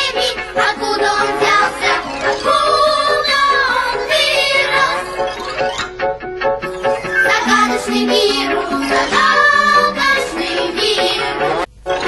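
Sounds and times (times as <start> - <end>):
children singing: 0.0 - 5.3, 7.2 - 11.7.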